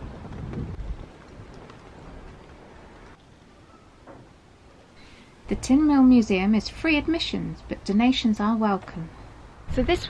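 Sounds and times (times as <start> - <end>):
wind buffeting microphone: 0.0 - 3.2, 9.4 - 10.0
steady outdoor hiss: 0.0 - 10.0.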